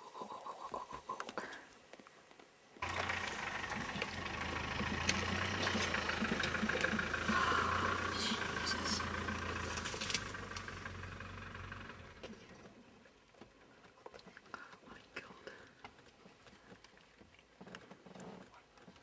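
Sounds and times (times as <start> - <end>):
vehicle engine idling: 2.8 - 12.8.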